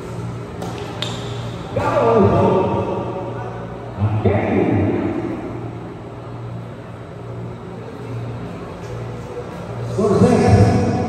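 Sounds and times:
large hall room noise: 0:00.0 - 0:11.0
steady low hum: 0:00.0 - 0:11.0.

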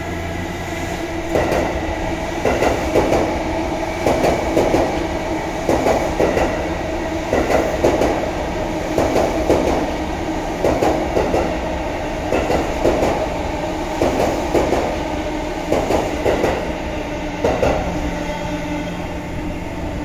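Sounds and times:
train running rumble: 0:00.0 - 0:20.0
train wheels clattering: 0:01.2 - 0:01.8, 0:02.4 - 0:03.4, 0:04.0 - 0:05.0, 0:05.7 - 0:06.7, 0:07.3 - 0:08.2, 0:08.9 - 0:10.0, 0:10.6 - 0:11.6, 0:12.2 - 0:13.2, 0:13.9 - 0:15.0, 0:15.6 - 0:16.8, 0:17.4 - 0:18.0.

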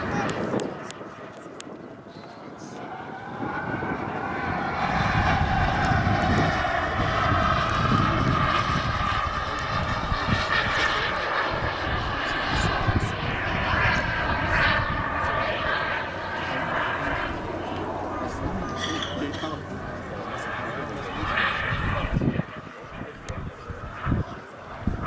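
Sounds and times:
jet engine rush with whine: 0:00.0 - 0:25.0.

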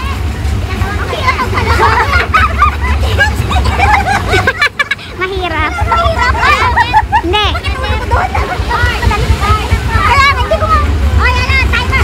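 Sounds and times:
low rumble: 0:00.0 - 0:12.0
people chattering: 0:00.0 - 0:12.0.

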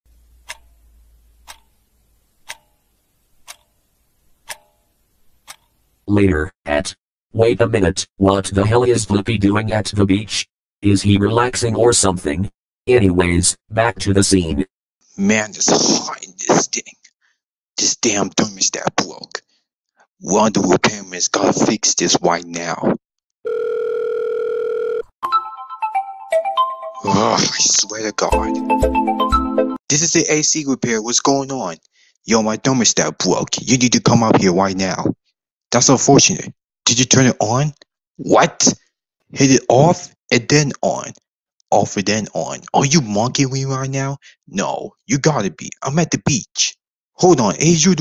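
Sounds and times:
clock ticking: 0:00.1 - 0:01.8, 0:02.4 - 0:03.8, 0:04.4 - 0:04.8, 0:05.4 - 0:05.8
phone ringing tone beep: 0:23.4 - 0:25.1
cell phone ringtone: 0:23.4 - 0:27.5.

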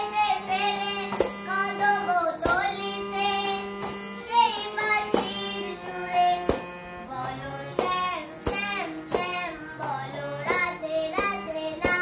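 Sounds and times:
girl singing devotional song: 0:00.0 - 0:12.0
harmonium chords: 0:00.0 - 0:12.0.

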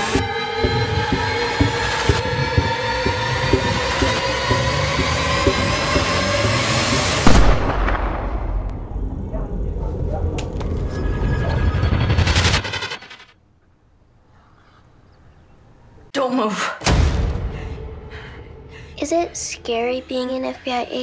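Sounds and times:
low pulse: 0:00.0 - 0:12.7
loud hit: 0:07.2 - 0:08.8.

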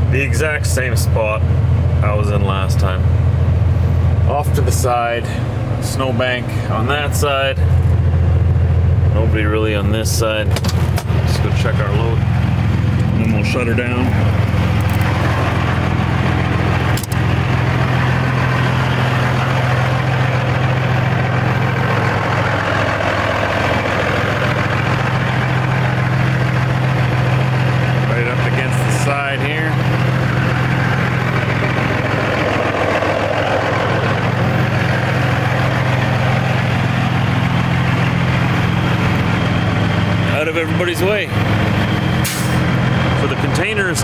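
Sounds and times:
diesel engine idling: 0:00.0 - 0:44.0
sharp click: 0:17.0 - 0:17.2.

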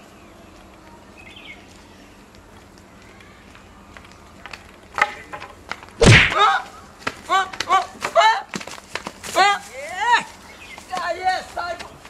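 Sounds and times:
footsteps on dirt path: 0:00.0 - 0:12.0
outdoor background hiss: 0:00.0 - 0:12.0.

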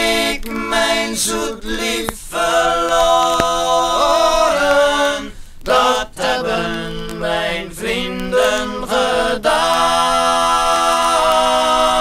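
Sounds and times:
group singing in close harmony: 0:00.0 - 0:12.0.

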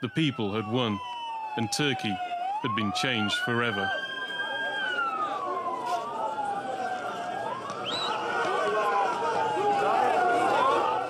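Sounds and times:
sirens wailing: 0:00.0 - 0:11.0
crowd voices: 0:03.2 - 0:11.0.

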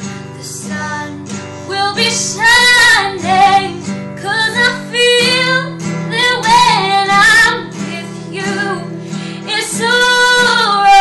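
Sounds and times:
classical guitar chords: 0:00.0 - 0:11.0
woman singing: 0:00.3 - 0:11.0.

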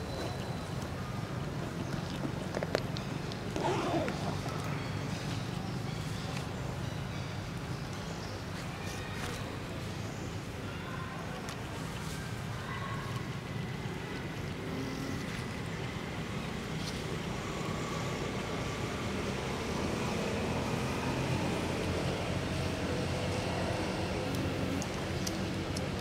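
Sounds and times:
distant traffic rumble: 0:00.0 - 0:26.0.

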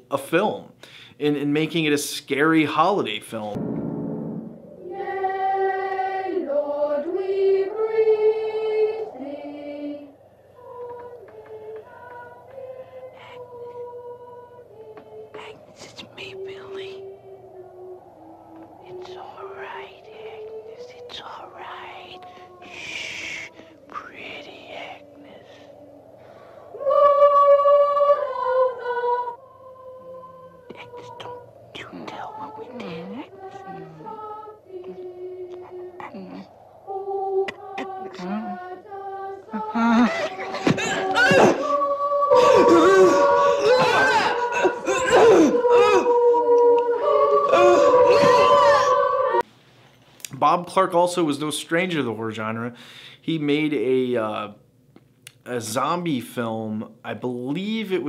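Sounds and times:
slow sung melody: 0:02.3 - 0:49.6
steady eerie tones: 0:02.8 - 0:49.5
high wailing sounds sliding: 0:04.5 - 0:10.1, 0:32.4 - 0:49.4
whispering strained voice: 0:15.3 - 0:25.8, 0:30.7 - 0:36.7, 0:37.4 - 0:38.8.

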